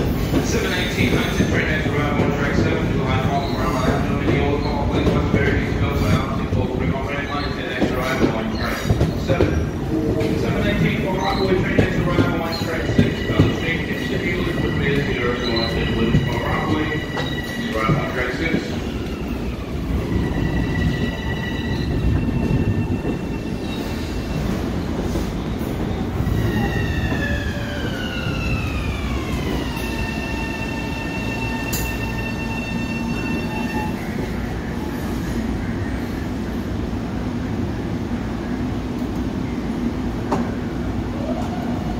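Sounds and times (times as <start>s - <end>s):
train wheels rumbling on rail: 0.0s - 41.9s.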